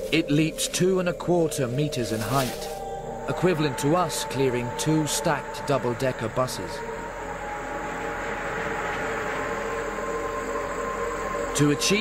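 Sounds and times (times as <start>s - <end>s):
droning background sound: 0.0s - 12.0s.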